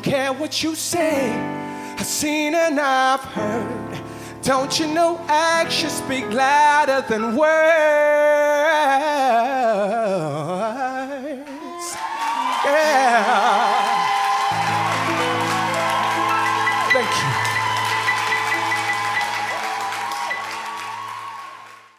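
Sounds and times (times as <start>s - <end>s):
audience applauding: 11.5s - 21.9s
band playing: 14.4s - 21.9s.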